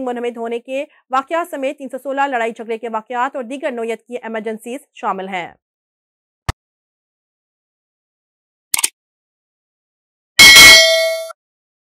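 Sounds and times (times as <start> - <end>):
metallic bell ding: 10.4 - 11.4.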